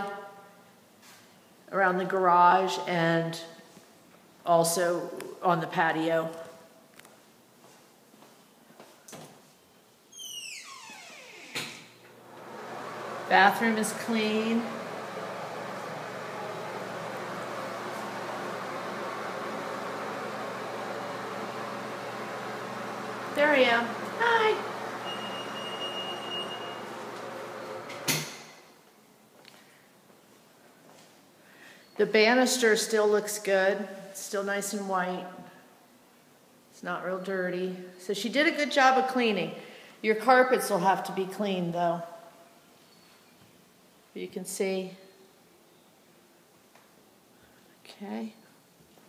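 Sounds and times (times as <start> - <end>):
mechanical hum: 0.0 - 39.9.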